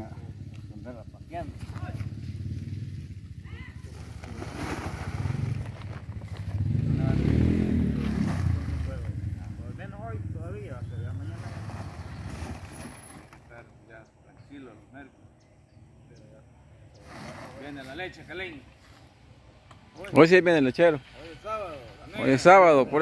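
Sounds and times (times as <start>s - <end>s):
passing vehicle engine: 0.0s - 13.7s
people talking: 6.9s - 11.5s, 20.0s - 23.0s.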